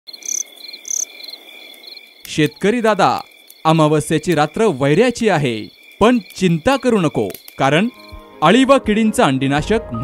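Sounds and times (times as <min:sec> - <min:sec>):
crickets chirping: 0:00.1 - 0:08.6.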